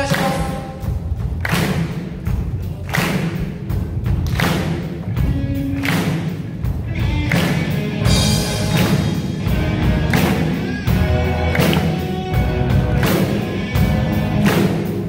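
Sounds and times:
cymbal and drum accents: 0.0s - 15.0s
rock band playing live: 0.0s - 15.0s.

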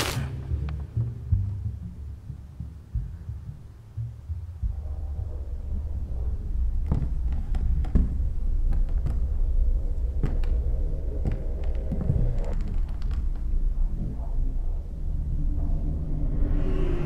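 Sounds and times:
low heartbeat-like throbbing: 0.9s - 17.0s.

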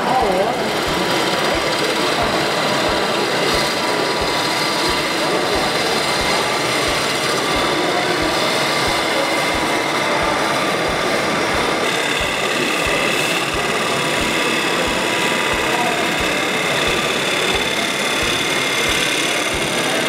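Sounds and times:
wood lathe motor whine: 0.0s - 20.0s.

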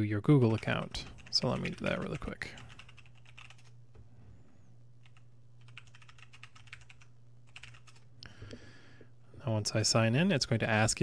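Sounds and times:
steady low hum: 0.0s - 11.0s
computer keyboard typing: 0.5s - 3.8s, 5.0s - 8.1s.

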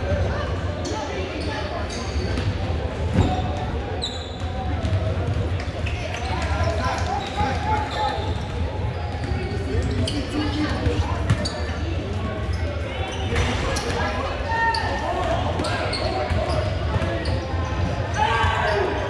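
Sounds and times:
chatter of people: 0.0s - 19.0s.

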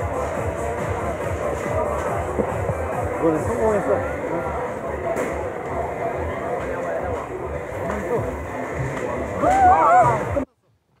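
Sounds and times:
indistinct people talking: 0.0s - 10.9s.

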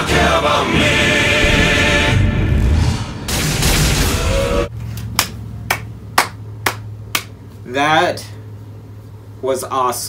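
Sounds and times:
steady low hum: 0.0s - 10.0s
person clapping hands slowly: 5.0s - 7.4s.

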